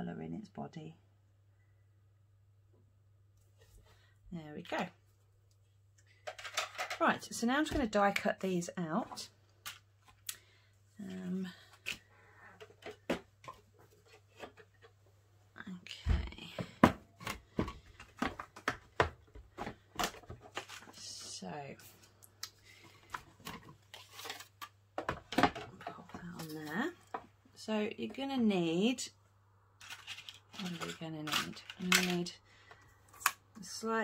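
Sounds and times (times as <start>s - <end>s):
woman speaking: 0.0s - 1.0s, 4.3s - 5.0s, 6.9s - 9.3s, 11.0s - 11.7s, 15.6s - 16.8s, 20.9s - 21.9s, 25.8s - 29.2s, 30.6s - 32.4s, 33.6s - 34.0s.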